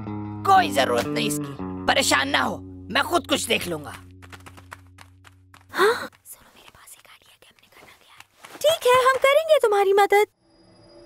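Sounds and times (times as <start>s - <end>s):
low background music tone: 0.0s - 5.5s.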